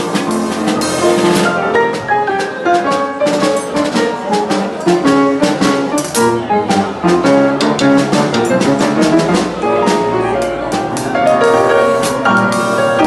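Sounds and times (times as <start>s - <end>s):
boogie-woogie piano: 0.0s - 13.0s
snare drum and cymbal beat: 0.0s - 13.0s.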